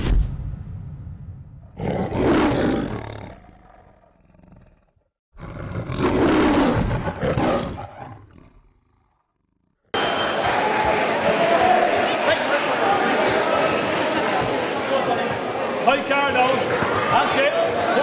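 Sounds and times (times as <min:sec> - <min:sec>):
tiger roaring: 0:01.7 - 0:09.3
sports hall background noise: 0:10.0 - 0:18.0.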